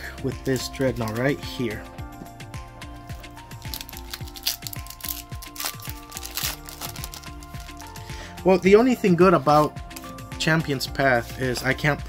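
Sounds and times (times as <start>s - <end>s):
music with steady beat: 0.0s - 12.0s
foil wrapper being ripped open: 3.6s - 7.9s.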